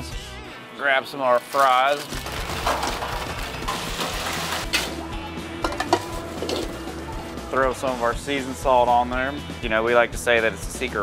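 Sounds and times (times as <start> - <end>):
background music: 0.0 - 11.0
oil sizzling in deep fryer: 2.9 - 4.9.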